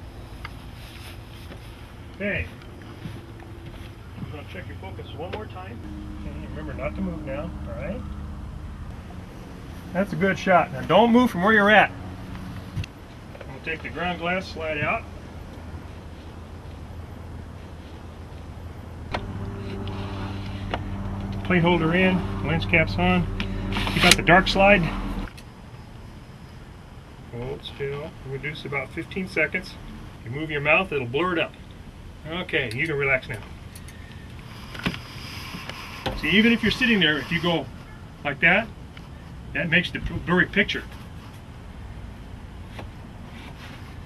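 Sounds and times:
low background rumble: 0.0s - 35.4s
steady low drone: 1.9s - 12.8s, 18.5s - 25.4s.

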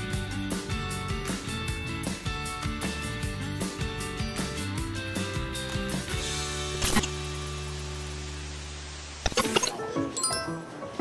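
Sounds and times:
static hiss: 6.2s - 9.7s.

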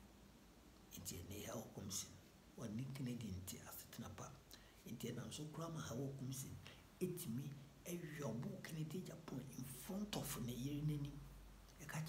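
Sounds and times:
man talking: 0.9s - 12.0s.

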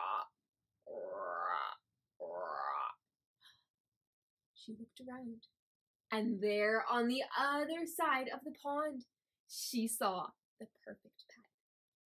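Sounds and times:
woman imitating frog croak: 0.0s - 3.0s.

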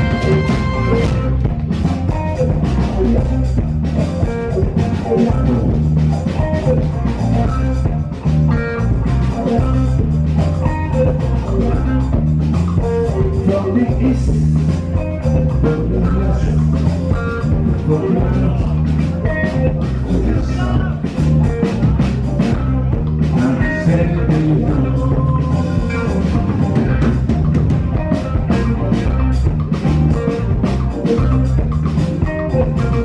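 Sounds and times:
bass guitar: 0.0s - 33.0s
congas: 0.0s - 33.0s
drum kit: 0.0s - 33.0s
electric guitar: 0.0s - 33.0s.

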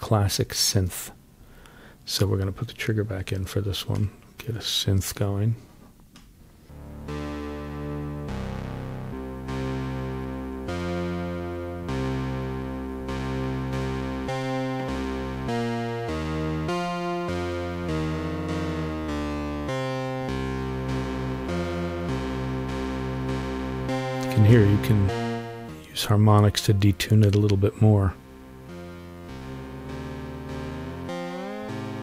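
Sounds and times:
detuned synthesizer notes: 6.6s - 32.0s.

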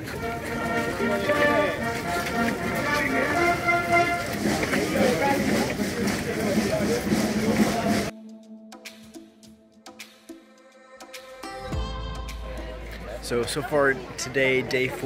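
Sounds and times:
military band playing a march: 0.0s - 8.1s.

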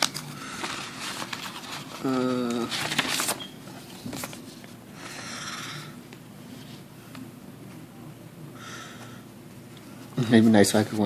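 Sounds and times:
paper rustling and crinkling: 0.0s - 4.8s.

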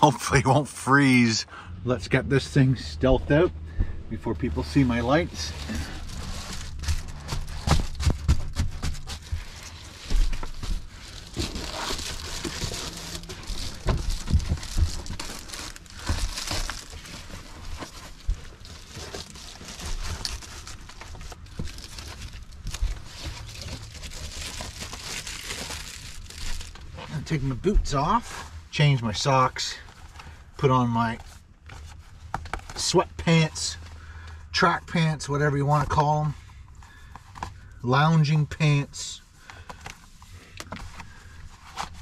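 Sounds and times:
foil crinkling and rustling: 4.7s - 27.4s.

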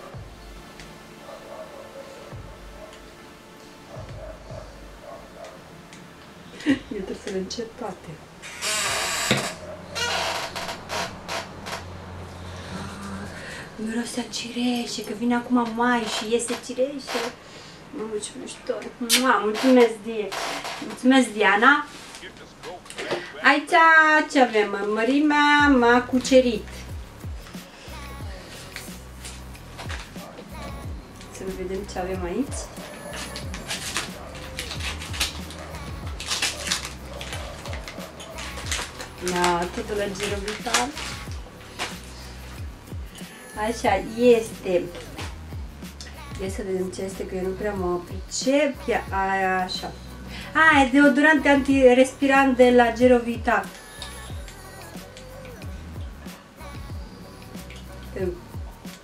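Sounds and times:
background music: 0.0s - 59.0s
wrapping paper crinkling: 28.5s - 30.4s, 32.4s - 42.6s
scissors snipping: 32.7s - 42.1s.

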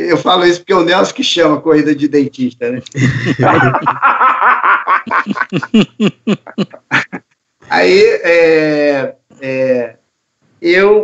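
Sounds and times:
men laughing: 2.8s - 7.2s.

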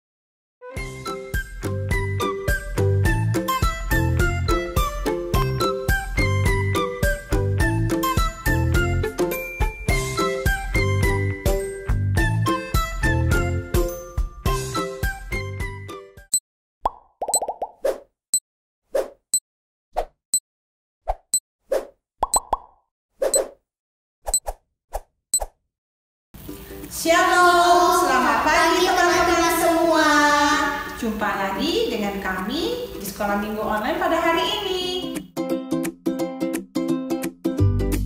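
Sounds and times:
cheerful background music: 0.6s - 16.2s, 34.3s - 38.0s.

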